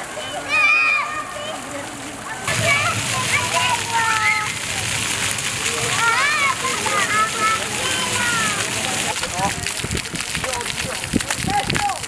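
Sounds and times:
children shouting and chattering: 0:00.0 - 0:10.2
fountain jets spraying and splashing: 0:00.0 - 0:12.0.

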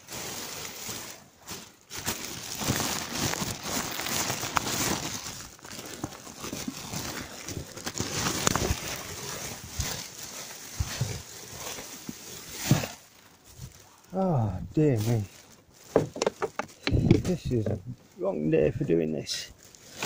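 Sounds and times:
plastic bags and bubble wrap crinkling: 0:00.0 - 0:20.0.

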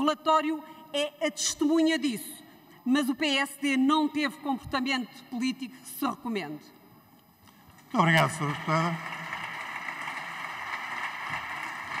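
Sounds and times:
applause: 0:08.0 - 0:12.0.

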